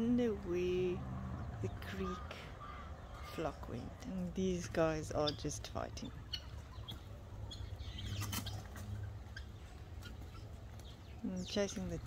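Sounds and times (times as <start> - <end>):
low steady rumble: 0.0 - 12.0
bird chirps and clicks: 6.3 - 12.0.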